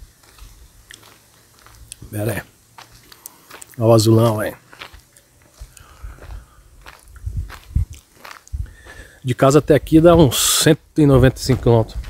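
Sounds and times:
soft low thumps: 0:05.6 - 0:09.0, 0:09.6 - 0:12.0.

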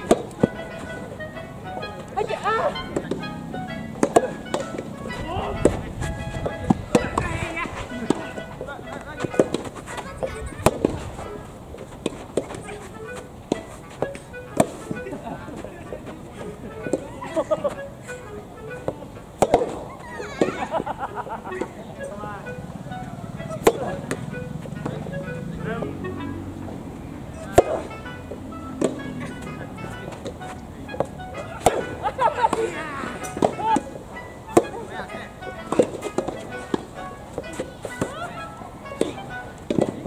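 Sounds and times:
background music: 0:00.0 - 0:40.0
tennis ball hitting rackets: 0:00.0 - 0:40.0
voices: 0:00.0 - 0:40.0.

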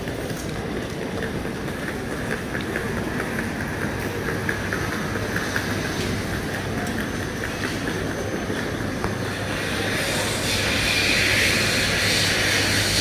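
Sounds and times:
airport terminal hum: 0:00.0 - 0:13.0.

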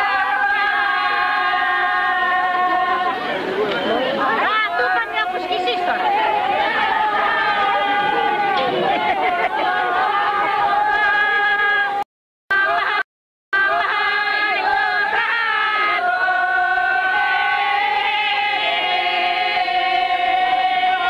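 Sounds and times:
crowd chatter: 0:00.0 - 0:13.0, 0:13.6 - 0:21.0
group singing folk song: 0:00.0 - 0:13.0, 0:13.6 - 0:21.0.

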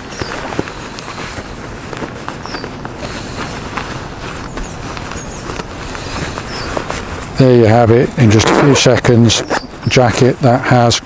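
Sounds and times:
jacket fabric rustling and crinkling: 0:00.0 - 0:10.8.

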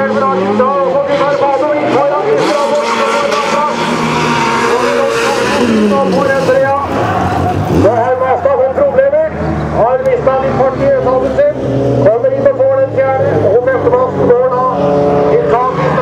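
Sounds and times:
announcer over loudspeaker: 0:00.0 - 0:16.0
stock car engines racing: 0:00.0 - 0:16.0.

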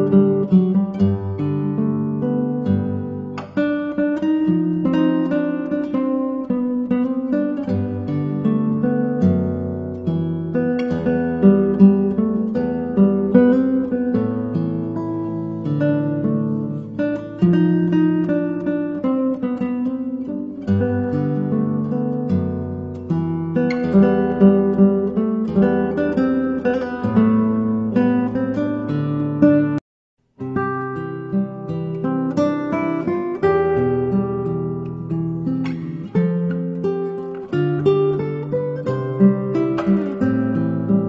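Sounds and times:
acoustic guitar music: 0:00.0 - 0:41.0.

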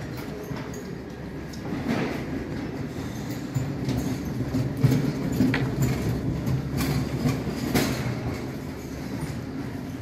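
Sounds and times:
stretcher wheels rolling: 0:00.0 - 0:10.0.

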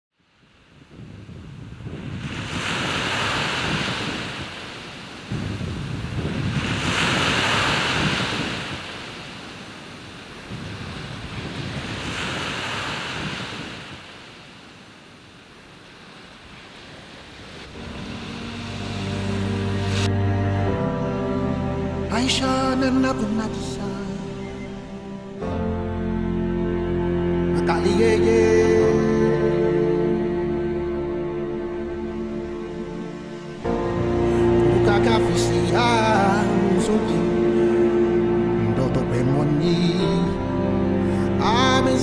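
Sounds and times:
ocean waves washing onto beach: 0:00.3 - 0:20.1
music: 0:17.7 - 0:42.0.

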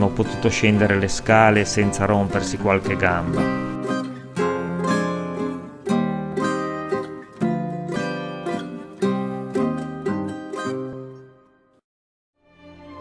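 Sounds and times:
plucked string instrument music: 0:00.0 - 0:11.8.

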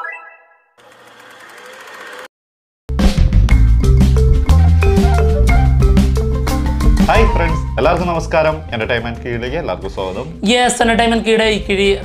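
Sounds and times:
fast rattling whir: 0:00.8 - 0:02.3
marimba tune: 0:03.7 - 0:06.0.

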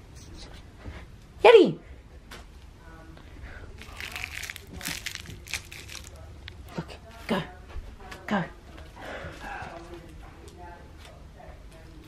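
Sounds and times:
tape ball crinkling and crunching: 0:03.8 - 0:06.6.

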